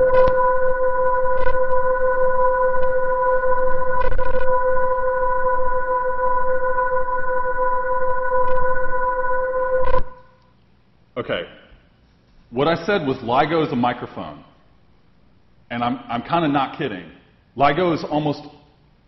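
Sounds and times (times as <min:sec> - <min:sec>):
steady high-pitched tones: 0:00.0 - 0:10.5
steady noise hiss: 0:00.0 - 0:19.0.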